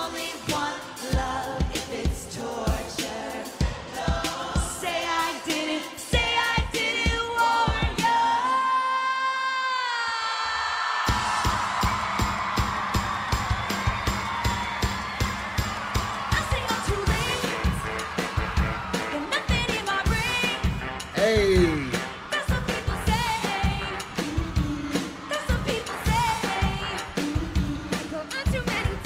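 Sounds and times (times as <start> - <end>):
fast drum beat: 0.0 - 8.3, 11.1 - 29.0
live pop band: 0.0 - 9.3, 11.1 - 29.0
woman singing: 0.0 - 10.7, 16.3 - 17.8, 19.1 - 20.7, 22.3 - 29.0.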